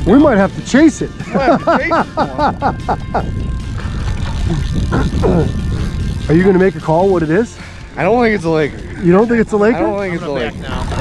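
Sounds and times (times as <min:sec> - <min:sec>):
man laughing: 0:01.2 - 0:03.4
low rumble: 0:01.8 - 0:11.0.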